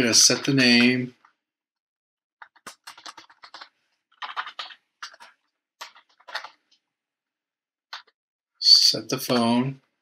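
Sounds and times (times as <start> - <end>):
typing on computer keyboard: 2.4 - 6.6, 7.9 - 8.2.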